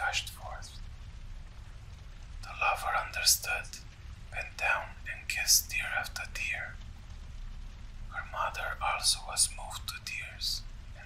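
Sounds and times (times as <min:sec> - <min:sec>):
person whispering: 0:00.0 - 0:00.8, 0:02.4 - 0:06.8, 0:08.1 - 0:11.0
fire crackling: 0:00.0 - 0:11.0.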